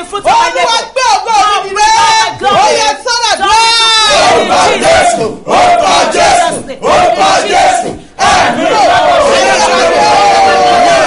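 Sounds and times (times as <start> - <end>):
man and woman shouting prayer: 0.0 - 6.9.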